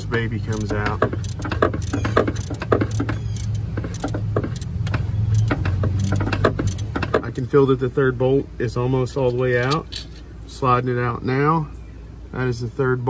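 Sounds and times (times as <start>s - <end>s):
metallic clicks and rattles: 0.5s - 7.3s.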